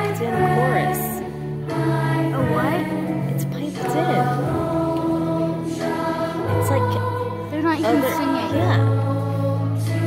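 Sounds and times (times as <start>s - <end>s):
children's choir singing: 0.0s - 10.0s
recorded accompaniment: 0.0s - 10.0s.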